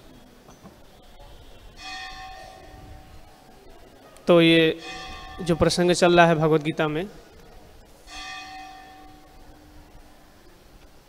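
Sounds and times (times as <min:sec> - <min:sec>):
temple bell ringing: 0:01.2 - 0:10.7.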